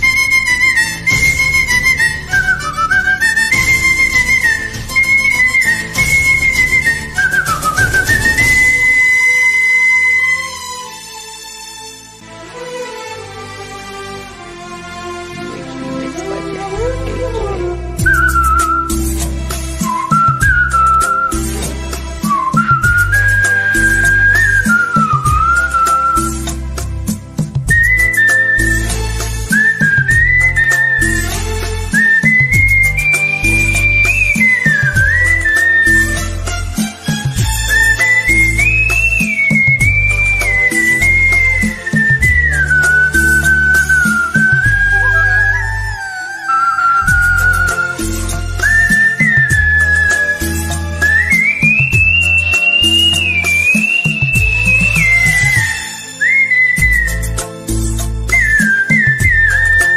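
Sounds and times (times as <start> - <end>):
man whistling a melody: 0.0 - 10.6, 18.0 - 26.6, 27.7 - 36.4, 37.7 - 59.9
backing track with bass and drums: 16.8 - 45.5, 47.1 - 55.8, 56.8 - 59.9.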